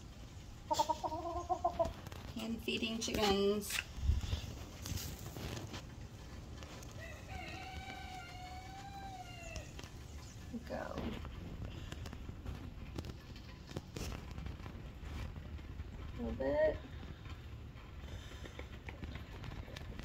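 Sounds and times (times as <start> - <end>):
rooster crowing: 6.9 - 9.8.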